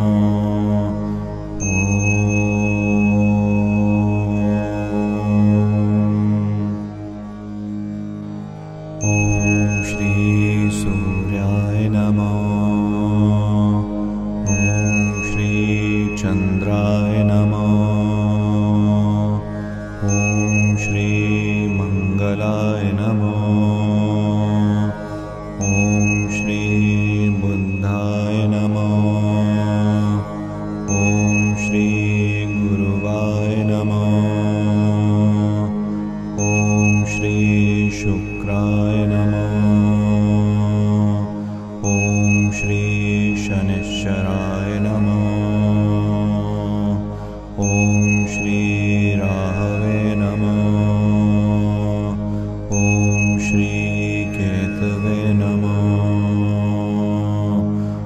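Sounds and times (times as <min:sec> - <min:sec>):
person chanting a mantra: 0:00.0 - 0:06.8, 0:09.0 - 0:58.0
steady low drone: 0:00.0 - 0:58.0
high ringing tone: 0:01.6 - 0:05.8, 0:09.0 - 0:12.8, 0:14.4 - 0:18.8, 0:20.0 - 0:24.4, 0:25.6 - 0:29.5, 0:30.9 - 0:35.2, 0:36.4 - 0:40.3, 0:41.8 - 0:46.3, 0:47.6 - 0:51.6, 0:52.7 - 0:56.7.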